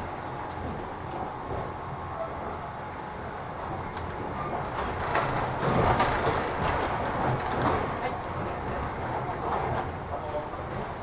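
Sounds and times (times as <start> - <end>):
train wheel and rail rumble: 0.0 - 11.0
short rail clacks: 3.7 - 11.0.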